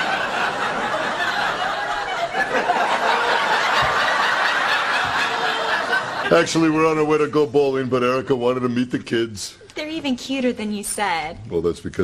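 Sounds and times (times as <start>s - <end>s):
audience laughing: 0.0s - 7.3s.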